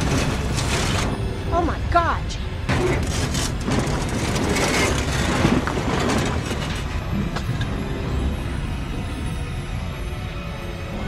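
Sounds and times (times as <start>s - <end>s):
fire crackling: 0.0s - 9.2s.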